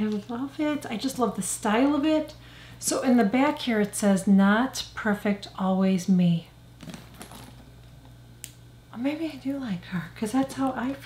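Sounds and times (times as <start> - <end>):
low steady room hum: 0.0 - 11.0
handbag handling sounds: 6.8 - 7.7.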